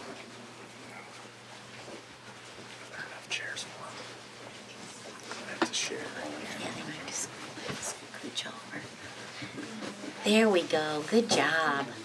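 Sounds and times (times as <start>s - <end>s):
soft whispering: 2.8s - 4.2s.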